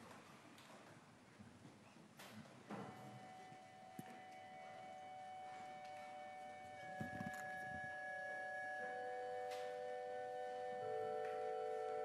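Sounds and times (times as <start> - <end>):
organ playing sustained chords: 3.3 - 12.0.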